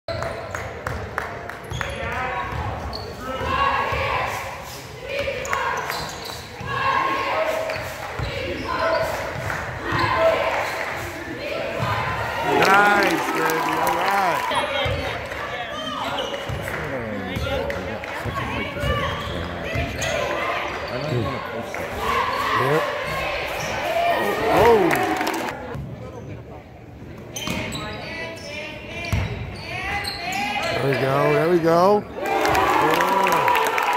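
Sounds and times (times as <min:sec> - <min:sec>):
voices: 0:03.2 - 0:25.8.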